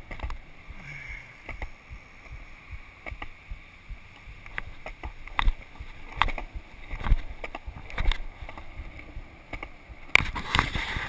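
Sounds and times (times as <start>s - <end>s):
skateboard wheels rolling on concrete: 0.0s - 11.0s
skateboard wheels clacking over joints: 4.0s - 11.0s.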